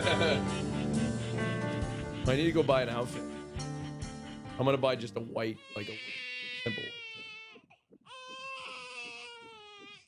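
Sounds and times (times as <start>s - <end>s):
newborn baby crying: 5.4s - 10.0s.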